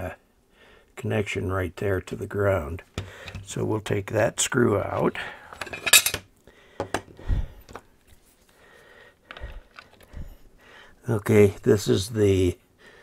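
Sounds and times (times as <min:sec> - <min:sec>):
metal hardware clinking: 0:05.6 - 0:06.2.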